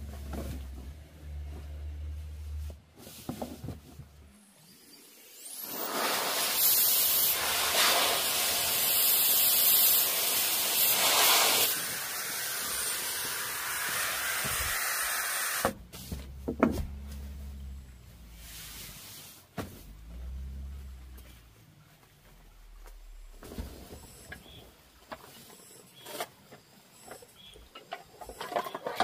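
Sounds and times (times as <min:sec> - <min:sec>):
air hissing through valve: 0:04.8 - 0:15.7.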